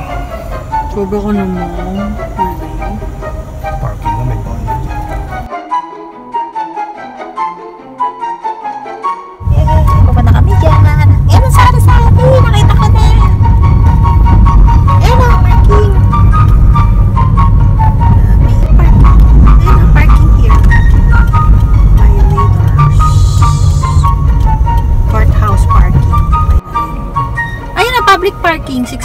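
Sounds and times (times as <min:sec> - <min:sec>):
wind and road noise rumble: 0:00.0 - 0:05.5, 0:09.4 - 0:29.0
light background melody: 0:00.0 - 0:29.0.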